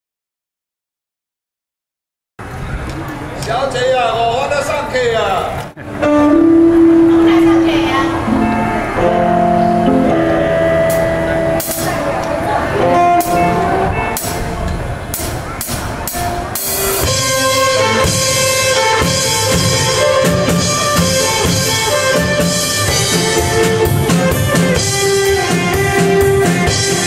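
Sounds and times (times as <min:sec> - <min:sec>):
live band playing: 0:05.8 - 0:27.0
sustained melody lines: 0:05.8 - 0:27.0.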